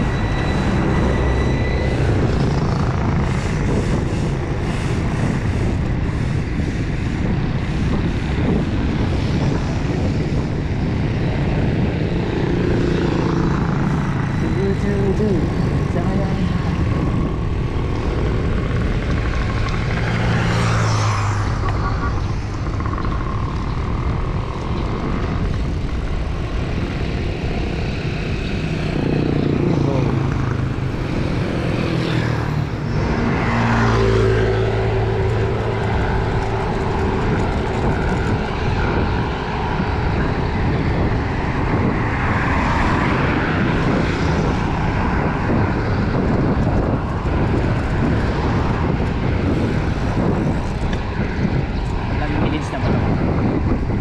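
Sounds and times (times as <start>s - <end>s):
passing vehicle engines humming: 0.0s - 54.0s
wind buffeting microphone: 0.0s - 54.0s.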